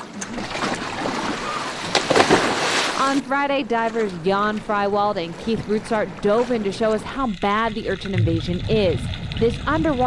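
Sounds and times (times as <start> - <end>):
wind: 0.0 - 7.1
low rumble: 8.0 - 10.0.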